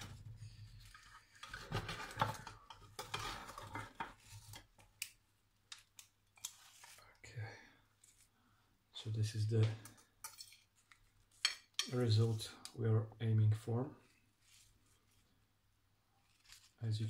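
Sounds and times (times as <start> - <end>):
utensil scraping a baking tray: 3.0 - 4.4.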